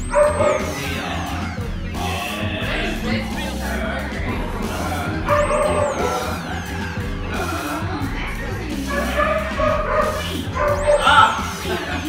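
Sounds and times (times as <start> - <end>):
puppies yipping and barking: 0.0 - 2.3, 5.2 - 12.0
background music: 0.0 - 12.0.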